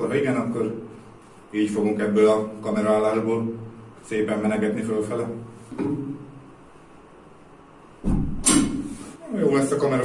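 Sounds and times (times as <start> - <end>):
heavy thud of bar on floor: 8.0 - 8.9.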